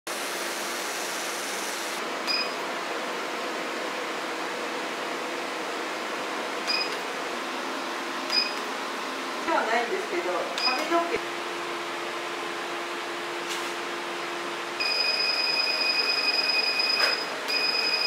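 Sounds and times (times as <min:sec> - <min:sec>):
machine fan hiss: 0:00.1 - 0:02.0.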